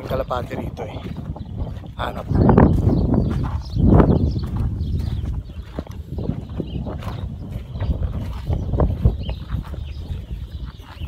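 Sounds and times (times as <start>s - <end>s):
footstep knocks and scuffs: 0.0s - 11.0s
wind rumbling on microphone: 0.0s - 11.0s.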